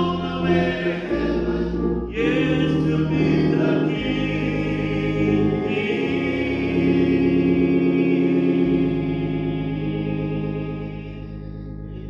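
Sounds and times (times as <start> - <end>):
men's choir singing a hymn: 0.0 - 11.2.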